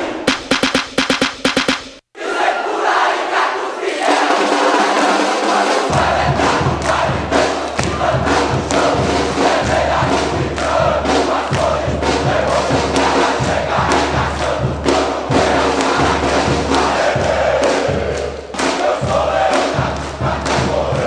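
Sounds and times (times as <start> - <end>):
drums beating steady rhythm: 0.0 - 2.1, 4.0 - 21.0
supporters chanting together: 2.2 - 21.0.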